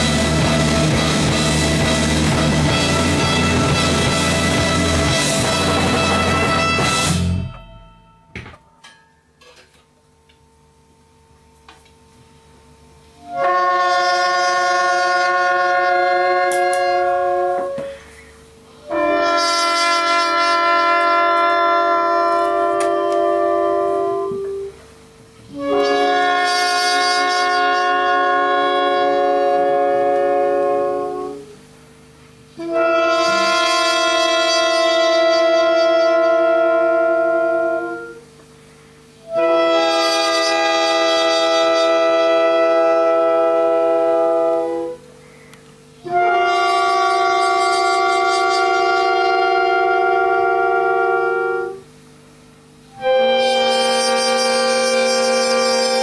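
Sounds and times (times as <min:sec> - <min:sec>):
horn section holding chords: 0:00.0 - 0:07.8, 0:13.2 - 0:18.1, 0:18.8 - 0:24.8, 0:25.5 - 0:38.4, 0:39.0 - 0:45.1, 0:46.0 - 0:52.0, 0:52.8 - 0:56.0.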